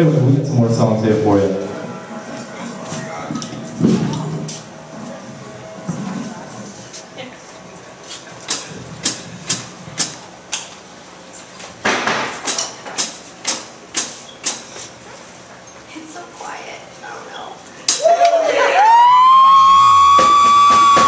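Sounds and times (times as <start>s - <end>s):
low room chatter: 0.0s - 10.4s
sharp percussive hits: 20.1s - 21.0s.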